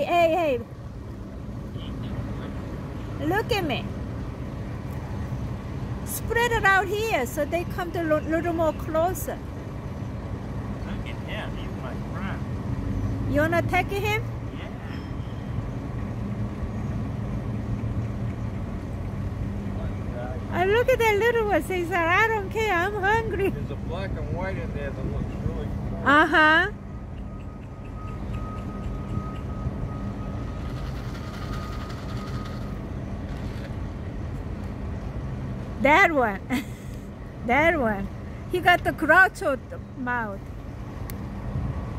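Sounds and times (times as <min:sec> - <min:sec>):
low rumble of traffic: 0:00.0 - 0:41.9.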